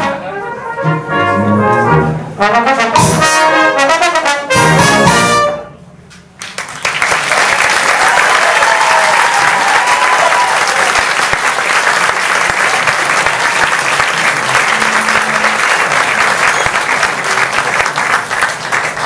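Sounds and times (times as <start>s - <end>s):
audience applauding: 6.4s - 19.0s.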